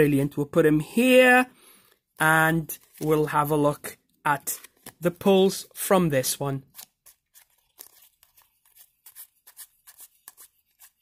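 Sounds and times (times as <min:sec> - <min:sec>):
trading cards clicking and rustling: 0:02.7 - 0:03.3, 0:04.4 - 0:05.4, 0:06.6 - 0:11.0.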